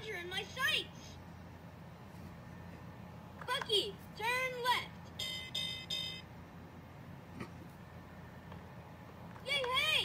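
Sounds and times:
short electronic tones: 0:05.2 - 0:06.3.

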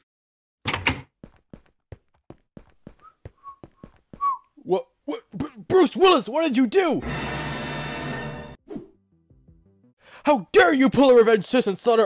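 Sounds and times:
man whistling: 0:03.0 - 0:04.5.

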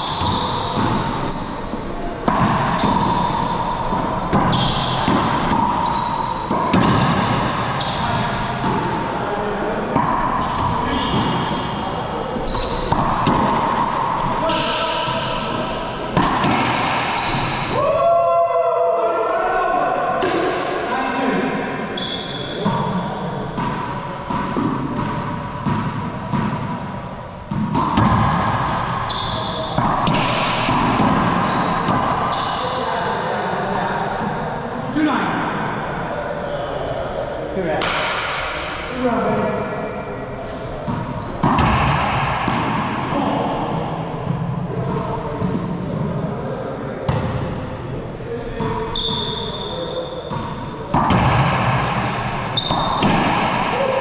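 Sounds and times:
racquetball hits and bounces: 0:00.0 - 0:17.8, 0:20.2 - 0:20.8, 0:21.9 - 0:33.3, 0:37.7 - 0:38.9, 0:40.5 - 0:46.2, 0:47.0 - 0:47.9, 0:48.5 - 0:54.0.

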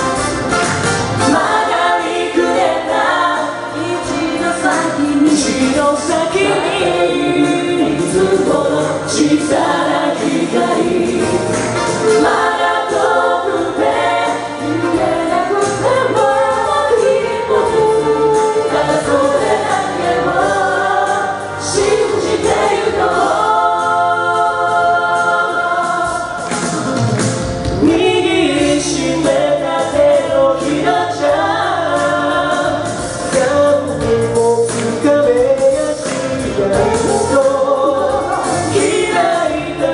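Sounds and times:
a cappella group singing: 0:01.2 - 0:27.0, 0:27.8 - 0:39.9.

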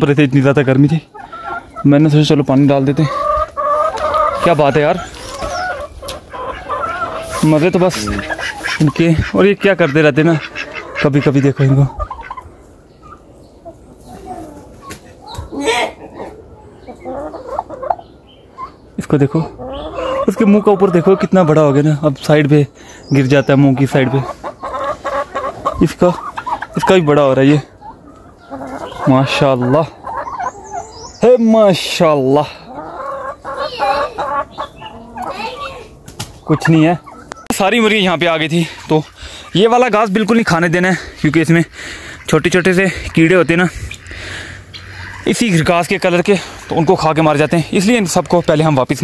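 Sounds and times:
poultry clucking and calling: 0:00.0 - 0:49.0.

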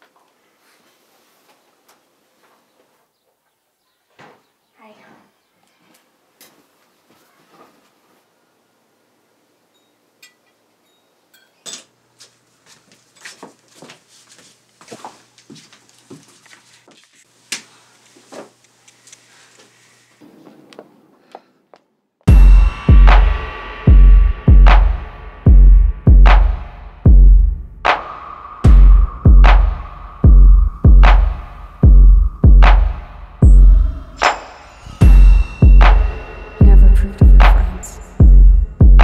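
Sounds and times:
dishes and cutlery clinking: 0:09.7 - 0:12.0.

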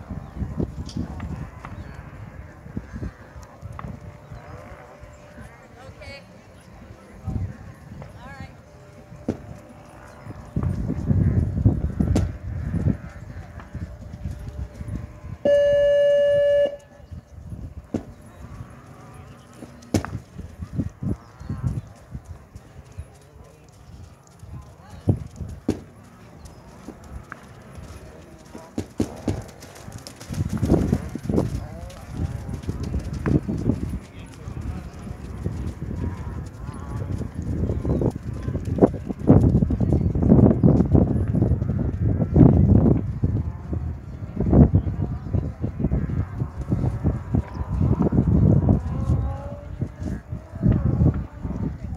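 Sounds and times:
electronic start buzzer tone: 0:15.4 - 0:16.9.

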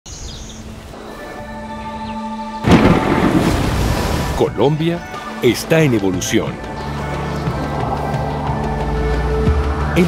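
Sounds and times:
soft music of held notes: 0:04.4 - 0:10.0.

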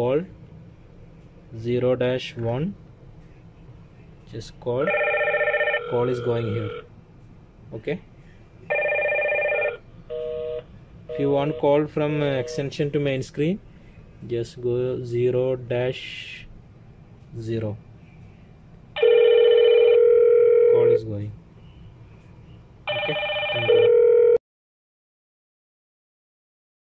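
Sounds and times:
intercom electronic ringtone: 0:04.8 - 0:06.8, 0:08.7 - 0:12.7, 0:19.0 - 0:21.0, 0:22.9 - 0:24.4.

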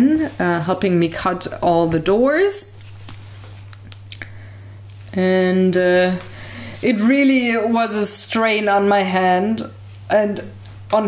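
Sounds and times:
electrical hum: 0:00.0 - 0:11.0.

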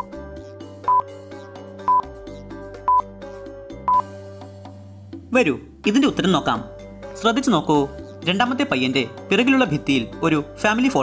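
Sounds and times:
looping background music: 0:00.0 - 0:11.0
short electronic beeps: 0:00.9 - 0:01.1.

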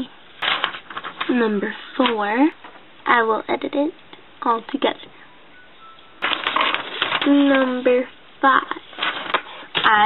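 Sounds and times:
notebook paper rustling: 0:00.4 - 0:02.5, 0:06.2 - 0:10.0.

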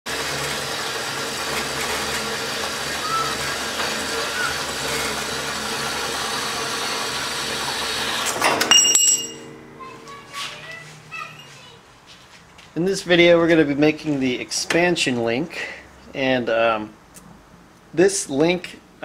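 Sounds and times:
metal bandsaw cutting: 0:00.1 - 0:10.2
metallic clank and ringing: 0:08.4 - 0:10.3.

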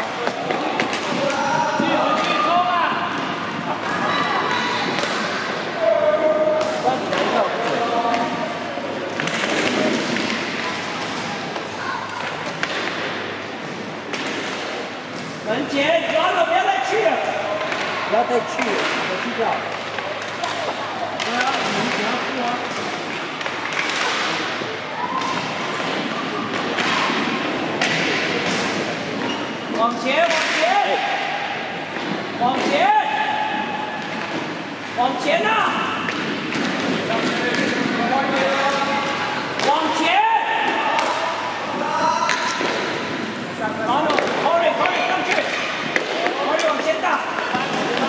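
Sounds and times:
sticks and puck clacking: 0:00.0 - 0:04.2, 0:04.8 - 0:15.4, 0:16.9 - 0:48.0.

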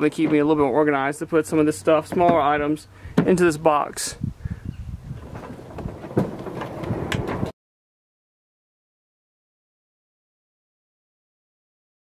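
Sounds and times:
wind rumble on microphone: 0:04.1 - 0:07.5.

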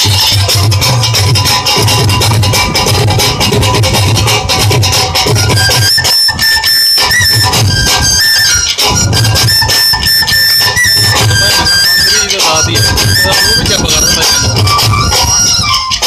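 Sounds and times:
drums beating steady rhythm: 0:00.0 - 0:16.0
flute-like wind instrument melody: 0:00.0 - 0:16.0.

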